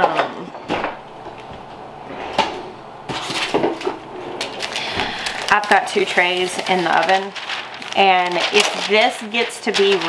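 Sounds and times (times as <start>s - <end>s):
cabinet opening and shutting: 0.7s - 4.4s.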